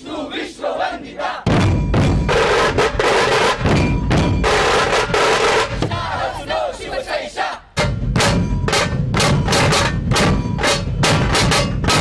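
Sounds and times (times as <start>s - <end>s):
drums beating fast rhythm: 1.4s - 6.8s, 7.7s - 12.0s
group shouting together: 5.8s - 7.6s.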